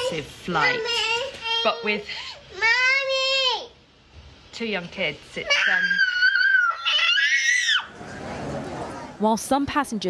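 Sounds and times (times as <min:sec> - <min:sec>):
young child screaming: 0:05.5 - 0:08.0.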